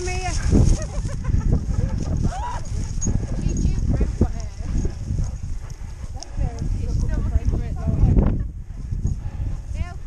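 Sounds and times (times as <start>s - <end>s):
footsteps on muddy grass: 0.0s - 7.3s.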